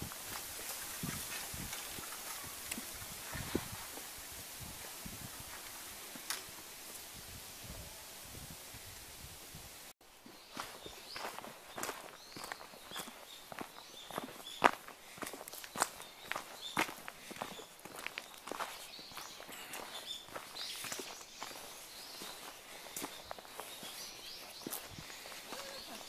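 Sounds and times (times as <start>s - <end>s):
footsteps crunching dry leaves: 0.0s - 6.8s, 10.2s - 26.0s.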